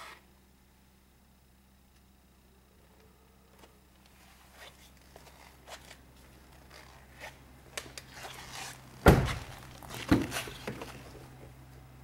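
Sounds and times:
rustling and handling: 4.0 - 11.4
car door shutting: 9.0 - 10.8.

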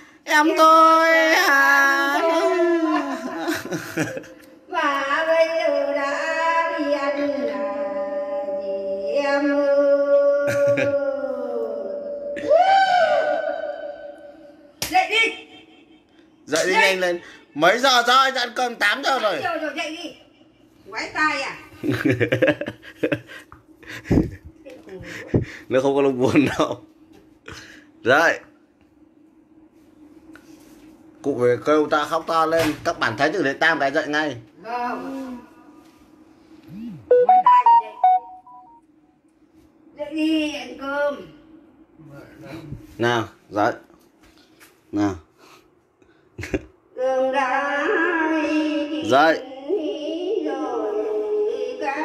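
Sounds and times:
woman wailing lament: 10.3 - 11.6
brief vocal sound: 36.6 - 38.3
phone ringtone beeping melody: 37.1 - 38.8.

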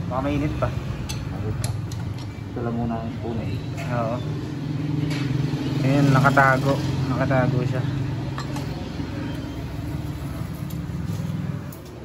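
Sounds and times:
people talking: 2.6 - 4.2, 5.8 - 7.9.

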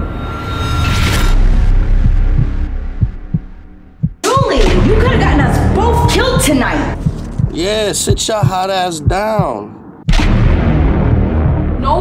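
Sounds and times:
low rumbling drone: 0.0 - 12.0
heartbeat-like thumps: 1.7 - 11.8.

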